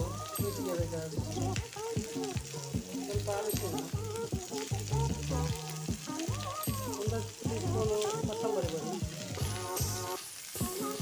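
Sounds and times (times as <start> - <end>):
background music: 0.0 - 11.0
food sizzling in a pan: 0.0 - 11.0.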